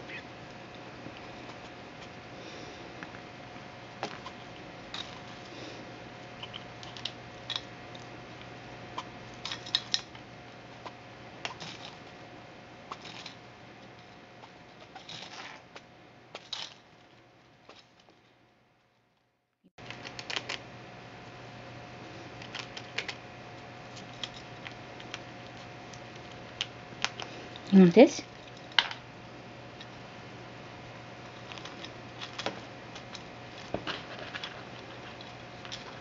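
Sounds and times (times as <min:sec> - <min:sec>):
squirrel gnawing in plastic bowl: 0:19.8 - 0:20.6, 0:22.2 - 0:29.0, 0:31.2 - 0:36.0.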